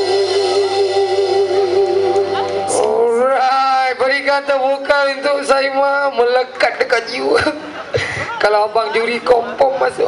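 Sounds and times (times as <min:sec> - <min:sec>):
man speaking over sound system: 0:02.7 - 0:07.6, 0:08.3 - 0:10.0.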